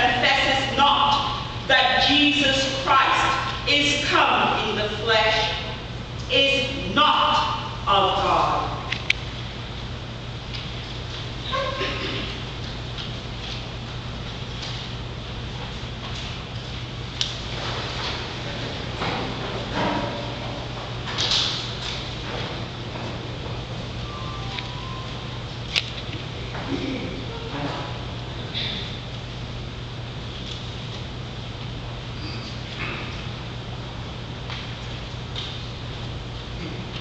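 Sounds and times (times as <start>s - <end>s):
steady low hum: 0.0s - 37.0s.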